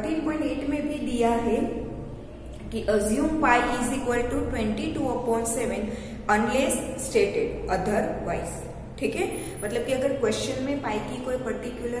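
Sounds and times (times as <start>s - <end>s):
woman talking: 0.0s - 2.0s, 2.6s - 12.0s.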